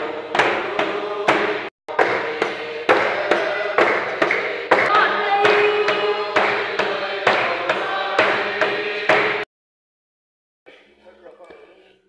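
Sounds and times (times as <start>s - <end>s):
group singing a hymn: 0.0s - 9.5s
barrel drum beats: 0.2s - 9.4s.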